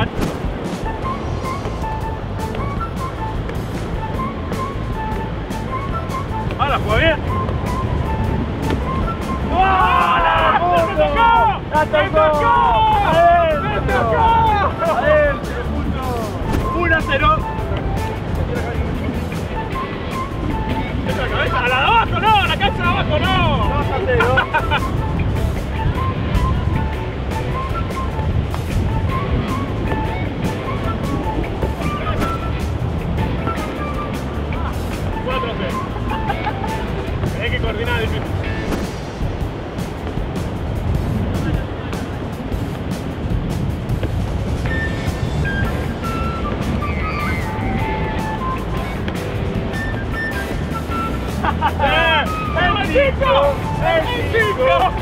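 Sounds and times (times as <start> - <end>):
music with a steady beat: 0.0 - 11.7, 12.4 - 55.0
voices: 0.8 - 28.2, 28.8 - 42.8, 44.6 - 55.0.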